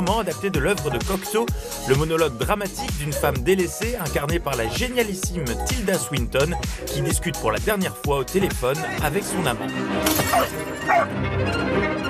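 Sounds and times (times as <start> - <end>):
dramatic orchestral music: 8.1 - 12.0
wine glass shattering: 10.0 - 11.0.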